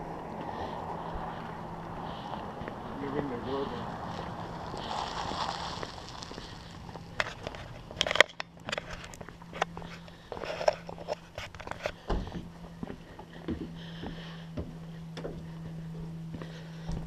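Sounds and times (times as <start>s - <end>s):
footsteps on concrete: 0.1s - 17.0s.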